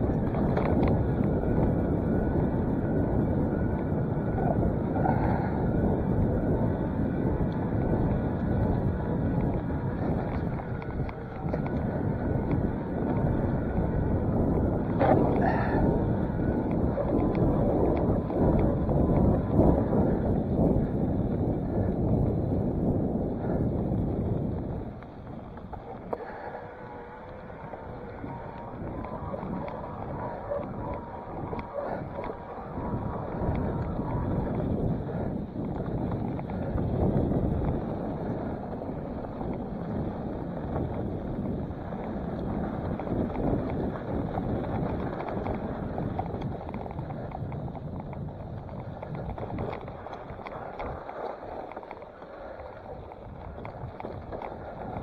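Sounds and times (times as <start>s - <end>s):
bike rumbling and rattling: 0.0s - 55.0s
wind buffeting microphone: 0.0s - 55.0s
faint ticks: 33.2s - 55.0s.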